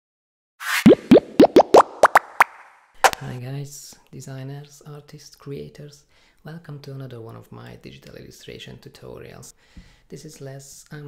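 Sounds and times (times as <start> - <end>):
pops sliding upward in pitch: 0.6 - 3.3.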